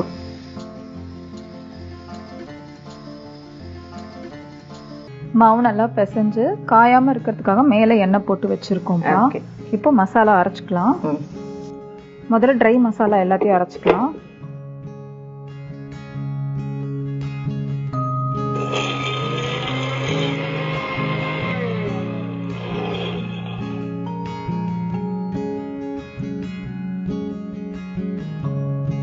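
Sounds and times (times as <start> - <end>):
acoustic guitar music: 0.0 - 29.0
electric mixer grinder grinding spices: 18.6 - 24.1.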